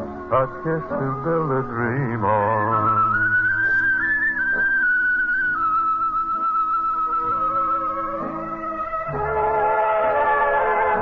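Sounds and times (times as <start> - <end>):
high whistled melody: 0.0 - 11.0
crooner singing ballad: 0.1 - 5.6.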